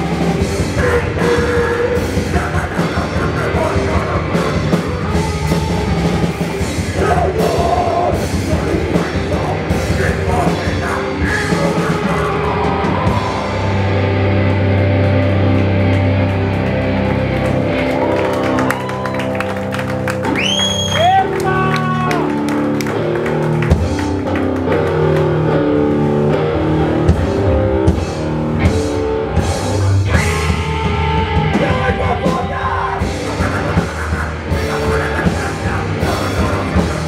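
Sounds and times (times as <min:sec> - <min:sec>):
hardcore band playing: 0:00.0 - 0:37.0
rising guitar slide: 0:00.0 - 0:37.0.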